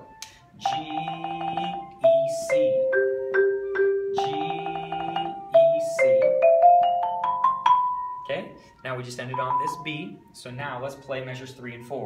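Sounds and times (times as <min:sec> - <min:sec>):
marimba played with mallets: 0:00.0 - 0:10.2.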